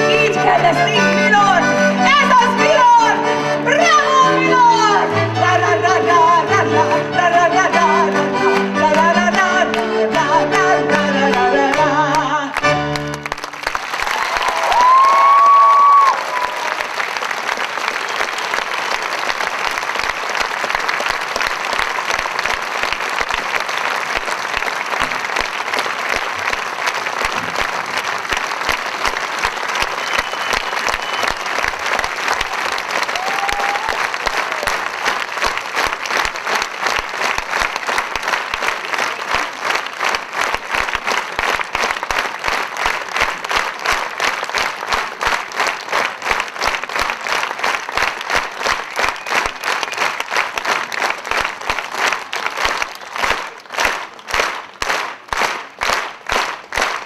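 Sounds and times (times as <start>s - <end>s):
audience applause: 0.0s - 57.0s
rhythmic clapping in unison: 5.0s - 57.0s.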